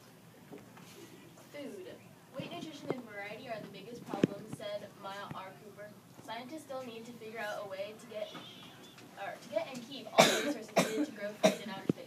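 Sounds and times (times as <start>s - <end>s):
person coughing: 10.2s - 11.7s.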